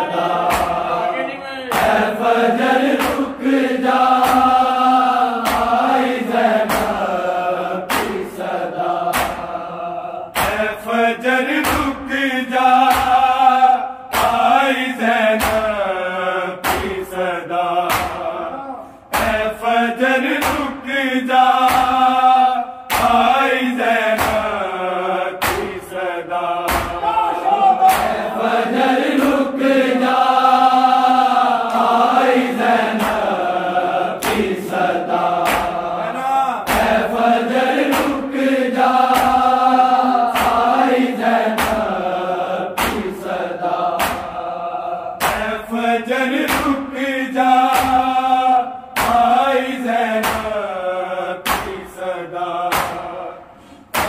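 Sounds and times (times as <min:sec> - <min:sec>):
men singing a lament in unison: 0:00.0 - 0:54.0
hands slapping chests: 0:00.3 - 0:01.0, 0:01.7 - 0:09.6, 0:10.3 - 0:10.8, 0:11.5 - 0:12.0, 0:12.6 - 0:15.8, 0:16.6 - 0:18.4, 0:19.1 - 0:20.8, 0:21.4 - 0:22.2, 0:22.9 - 0:24.6, 0:25.4 - 0:26.0, 0:26.6 - 0:27.2, 0:27.8 - 0:28.4, 0:31.7 - 0:36.0, 0:36.6 - 0:44.4, 0:45.2 - 0:45.7, 0:46.3 - 0:46.8, 0:47.5 - 0:49.6, 0:50.2 - 0:50.6, 0:51.4 - 0:52.0, 0:52.6 - 0:53.2, 0:53.8 - 0:54.0.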